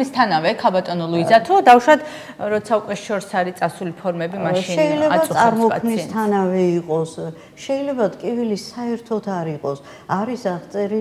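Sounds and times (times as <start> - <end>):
woman talking: 0.0 - 6.3.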